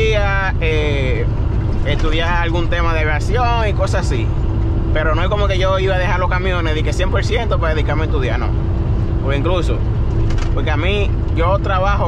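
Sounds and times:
man speaking: 0.0s - 4.3s, 4.9s - 8.6s, 9.2s - 9.8s, 10.5s - 12.0s
truck cab drone: 0.0s - 12.0s.

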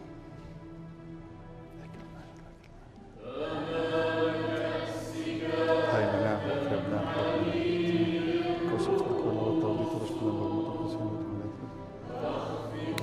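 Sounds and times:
choir singing slow chant: 3.1s - 13.0s.

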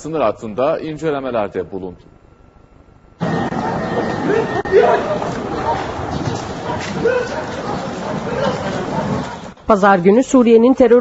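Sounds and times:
outdoor background noise: 0.0s - 11.0s
indistinct voices chattering: 3.2s - 9.6s.

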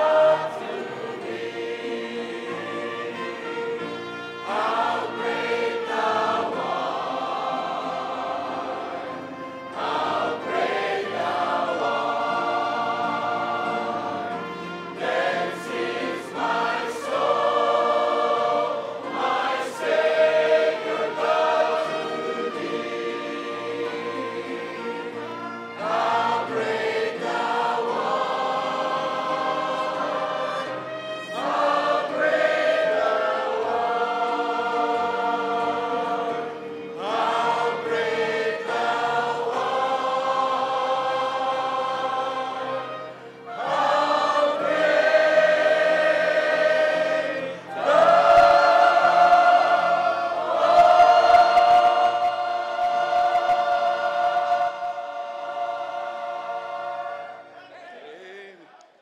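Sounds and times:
choir and congregation singing a hymn: 0.0s - 59.0s.

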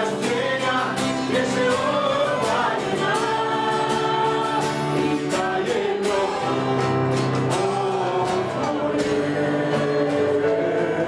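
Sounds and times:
keyboard: 0.0s - 11.0s
strummed acoustic guitars: 0.0s - 11.0s
voices singing together: 0.0s - 11.0s.

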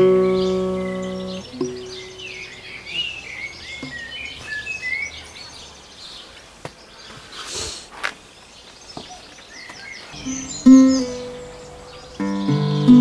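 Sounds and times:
birds chirping and singing: 0.0s - 13.0s
tenor guitar note: 10.2s - 13.0s.

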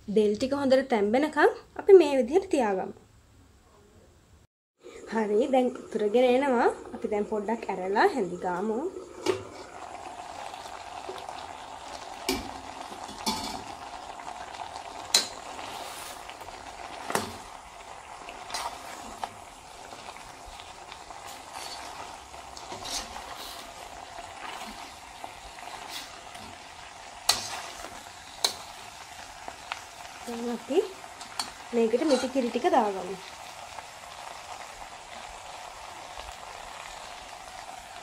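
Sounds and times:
curry sizzling in a pot: 4.8s - 38.0s
metal spoon scraping a pot: 21.3s - 23.7s, 27.3s - 28.7s, 31.2s - 32.4s.

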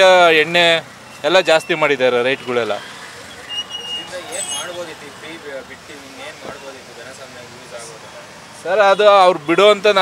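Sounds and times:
faint people talking: 0.0s - 10.0s
street traffic: 0.0s - 10.0s
high-pitched beeps: 1.1s - 4.8s.

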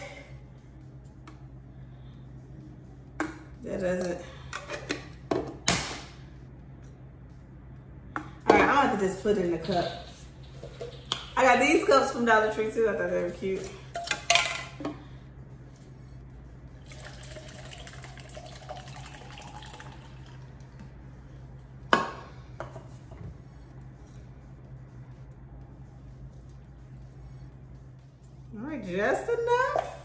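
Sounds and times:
liquid pouring into cup: 16.8s - 20.6s.

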